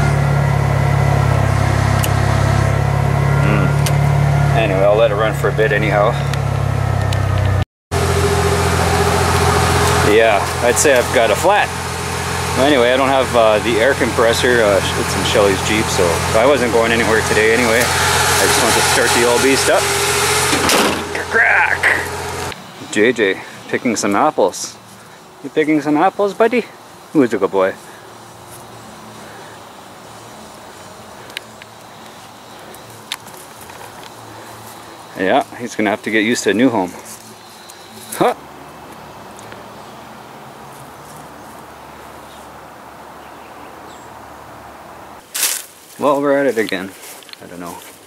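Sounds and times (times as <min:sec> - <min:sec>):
car engine idling: 0:00.0 - 0:45.3
outdoor background noise: 0:00.0 - 0:48.0.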